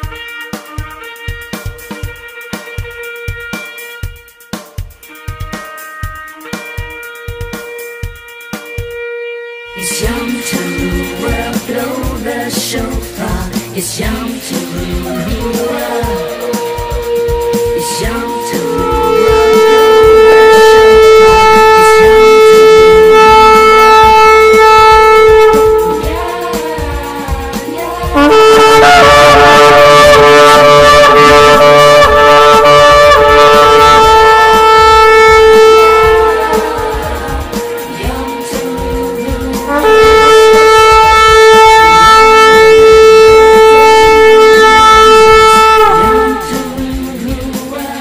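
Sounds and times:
ram's horn blast: 0.0s - 47.3s.

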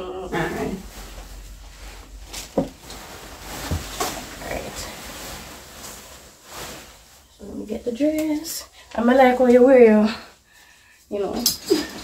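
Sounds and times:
tulle fabric rustling: 0.1s - 12.0s.

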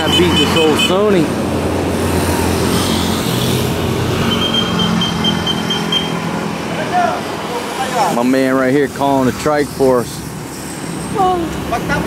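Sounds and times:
motorcycle passing: 0.0s - 12.0s
road noise from vehicles: 0.0s - 12.0s.

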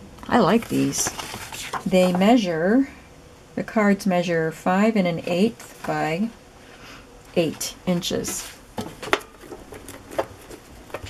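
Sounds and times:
paper rustling: 0.4s - 2.2s, 8.2s - 11.0s.

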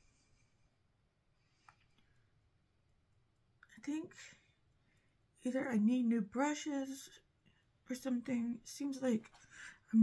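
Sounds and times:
woman speaking: 3.7s - 4.4s, 5.4s - 7.2s, 7.9s - 9.3s.

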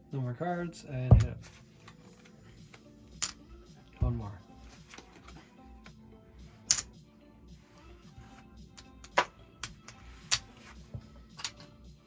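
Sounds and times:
quiet background music: 0.0s - 12.0s
cards and chip clicking on felt: 6.6s - 7.0s, 8.2s - 11.7s.

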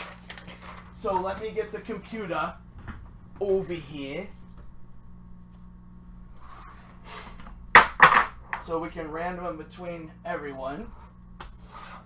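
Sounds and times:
handling and shuffling noises: 0.0s - 2.2s
low steady hum: 0.0s - 12.0s.

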